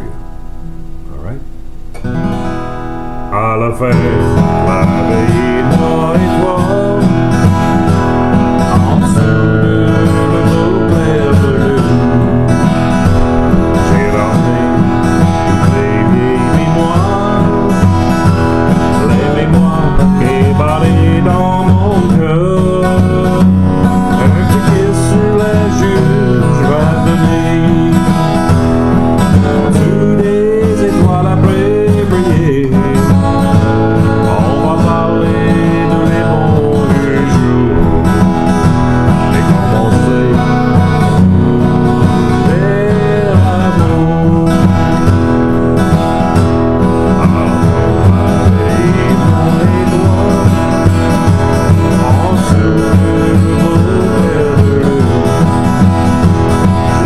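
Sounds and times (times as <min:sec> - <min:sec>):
acoustic guitar strumming: 0:00.0 - 0:57.0
man singing: 0:03.2 - 0:57.0.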